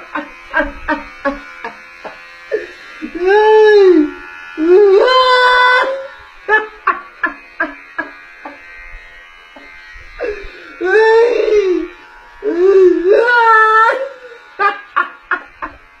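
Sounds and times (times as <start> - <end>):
man wailing and sobbing: 2.6 - 8.1, 10.2 - 15.6.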